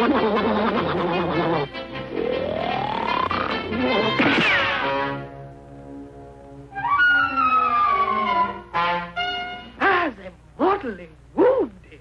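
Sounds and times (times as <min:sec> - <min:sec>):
cartoon orchestral music: 0:03.0 - 0:09.8.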